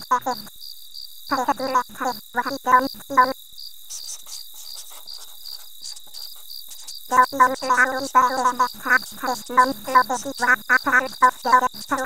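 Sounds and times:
constant high-pitched tone: 0.0 - 12.0
crickets chirping: 0.0 - 12.0.

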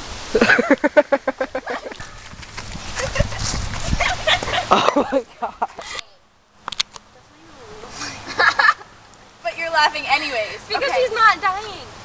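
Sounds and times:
girls laughing: 0.3 - 6.2, 8.0 - 9.0, 10.0 - 11.2.

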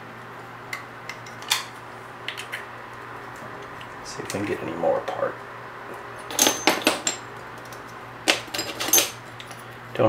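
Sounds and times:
metal baffles clinking: 6.2 - 9.2.

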